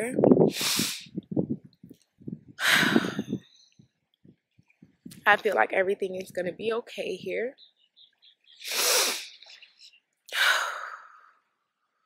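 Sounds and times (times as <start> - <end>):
woman blowing breath out: 0.5 - 1.2, 8.6 - 9.4.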